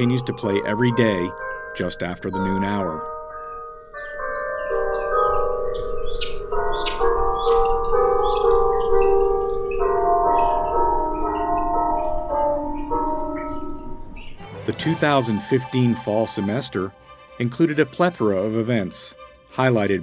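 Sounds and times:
clock tower bells playing a melody: 0.0s - 18.9s
birds chirping: 0.0s - 20.0s.

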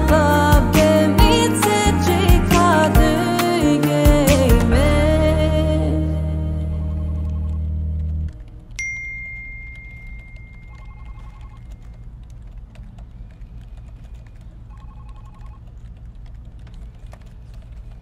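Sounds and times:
song music: 0.0s - 8.7s
phone notification ding: 8.8s - 11.6s.

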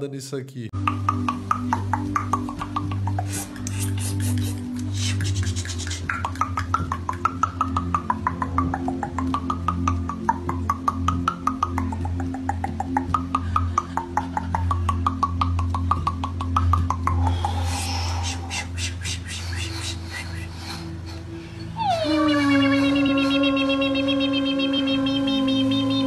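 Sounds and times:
rapid pitched clicking: 4.7s - 17.3s.

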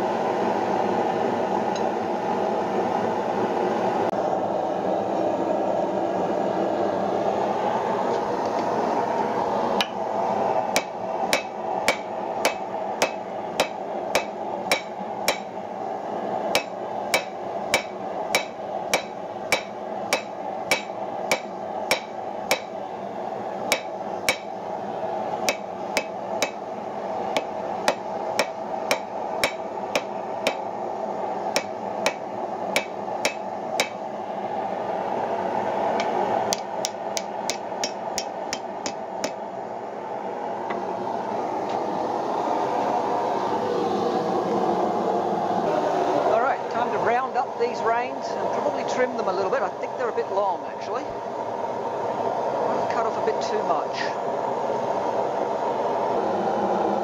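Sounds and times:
hammer striking iron on anvil: 10.7s - 15.5s, 16.5s - 22.7s, 23.7s - 24.5s, 25.5s - 26.6s, 27.4s - 30.6s, 31.6s - 32.2s, 32.8s - 34.0s, 36.5s - 39.4s.

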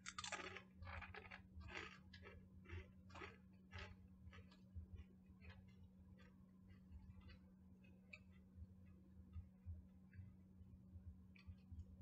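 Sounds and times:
crunchy chips being chewed: 0.0s - 7.4s.

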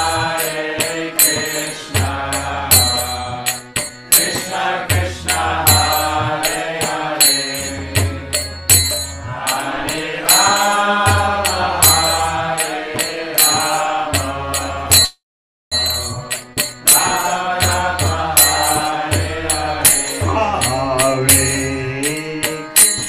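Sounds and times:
hand cymbals striking: 0.0s - 23.0s
man chanting into microphone: 20.2s - 22.8s.

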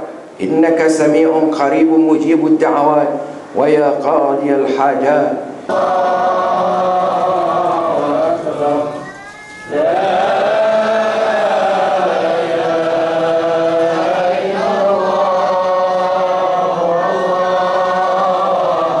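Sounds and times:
voices chanting together: 5.6s - 9.1s, 9.7s - 19.0s.

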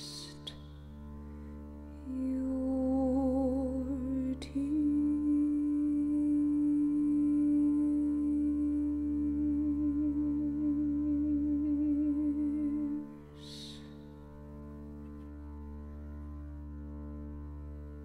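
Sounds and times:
low steady drone: 2.0s - 18.0s.

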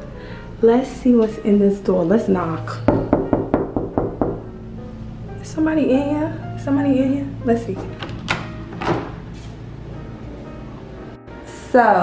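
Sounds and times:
knuckles knocking on door: 2.9s - 4.5s.

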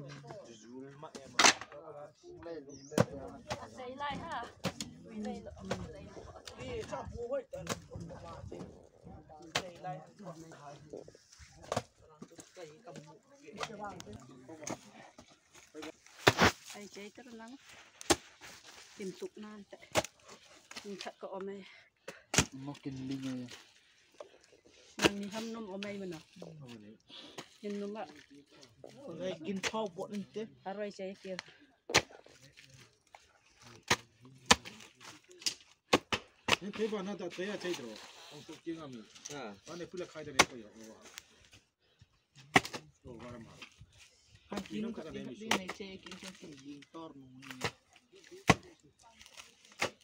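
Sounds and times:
people talking: 0.0s - 15.1s.

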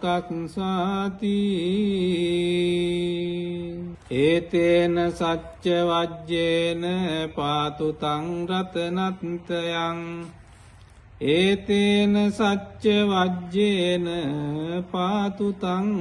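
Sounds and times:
person chanting: 0.0s - 10.5s, 11.2s - 16.0s.

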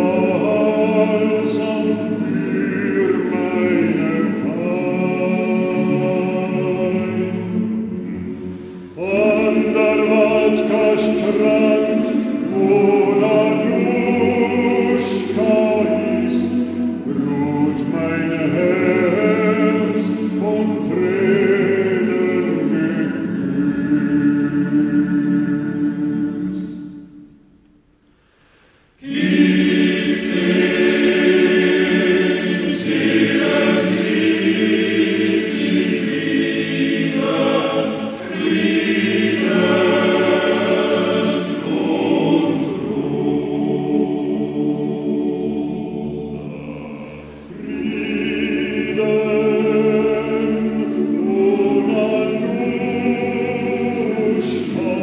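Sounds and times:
choir singing slow song: 0.0s - 27.5s, 28.1s - 55.0s.

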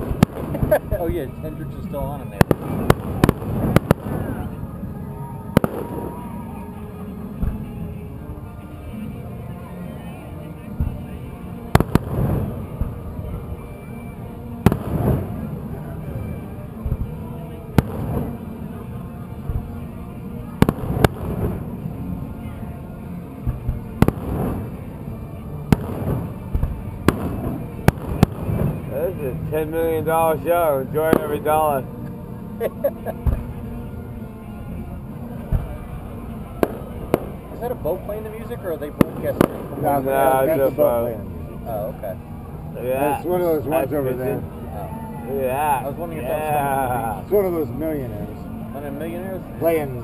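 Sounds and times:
fireworks bursting: 0.0s - 6.6s, 7.2s - 8.4s, 10.7s - 31.9s, 32.6s - 33.8s, 35.3s - 42.2s
continuous low rumble: 0.0s - 50.0s.

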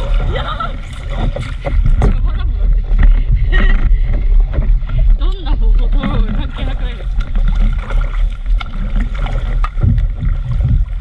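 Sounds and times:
heavy low rumble: 0.0s - 11.0s
water splashing against paddleboard: 0.0s - 11.0s.

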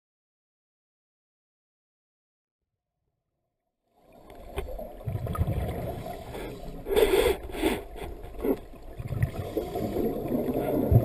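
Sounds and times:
low rumble of moving water: 4.0s - 11.0s.

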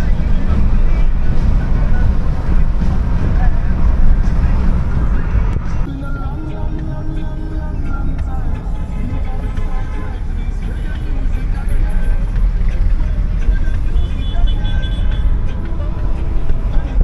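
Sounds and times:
car road and engine rumble: 0.0s - 17.0s.

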